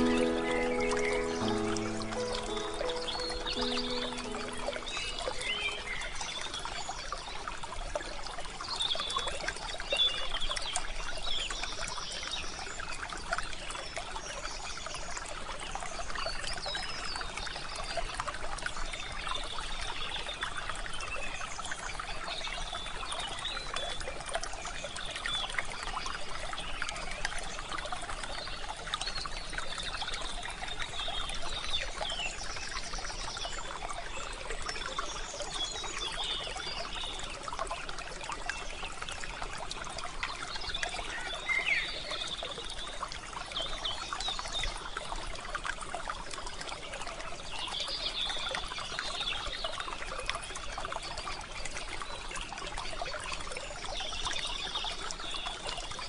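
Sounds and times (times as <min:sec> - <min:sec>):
bird chirps: 0:00.0 - 0:06.2
stream trickling: 0:00.0 - 0:56.0.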